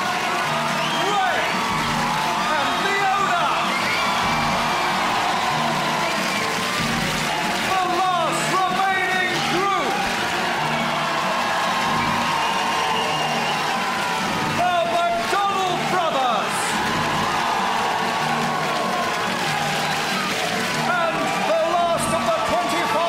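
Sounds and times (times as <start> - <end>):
audience cheering and whooping: 0.0 - 23.0
music: 0.0 - 23.0.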